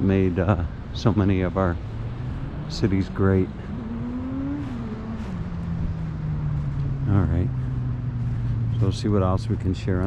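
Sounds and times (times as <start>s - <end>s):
motor engine droning: 0.0s - 10.0s.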